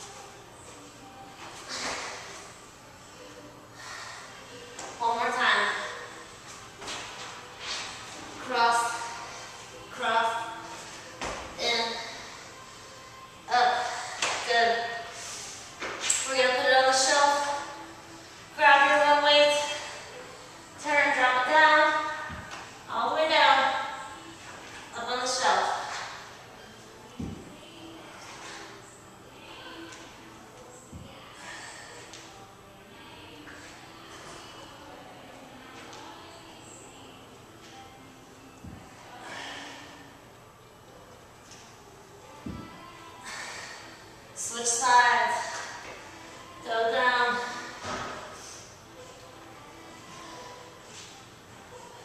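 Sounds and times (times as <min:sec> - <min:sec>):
woman's voice: 0:05.0 - 0:06.1, 0:08.3 - 0:09.2, 0:09.8 - 0:10.6, 0:11.6 - 0:12.3, 0:13.5 - 0:15.1, 0:18.6 - 0:19.9, 0:20.8 - 0:22.3, 0:22.9 - 0:24.0, 0:24.9 - 0:25.9, 0:44.4 - 0:45.6, 0:46.6 - 0:47.7.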